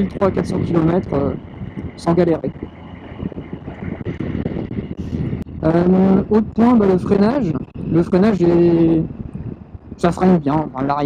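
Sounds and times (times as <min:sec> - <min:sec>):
motorcycle engine running: 0:00.0 - 0:11.0
wind rush on microphone: 0:00.0 - 0:11.0.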